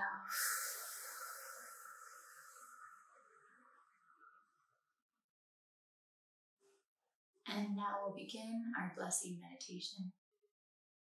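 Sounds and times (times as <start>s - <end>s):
woman exhaling slowly: 0.0s - 3.0s.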